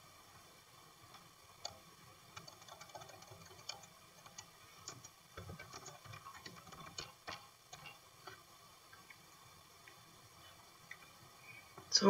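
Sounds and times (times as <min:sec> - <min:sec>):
typing on computer keyboard: 0:02.4 - 0:07.9.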